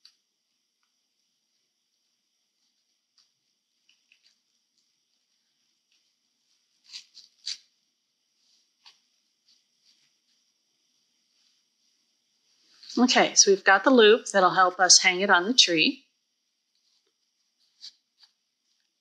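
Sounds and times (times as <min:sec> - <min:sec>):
faint steady hiss: 0:00.0 - 0:19.0
ribbon rustling and crinkling: 0:02.5 - 0:07.7.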